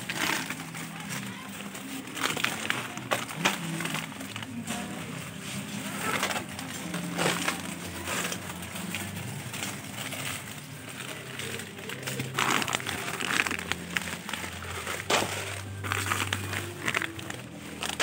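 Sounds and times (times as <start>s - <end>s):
crinkly clattering: 0.0s - 18.0s
shopping cart basket rattling: 0.0s - 18.0s.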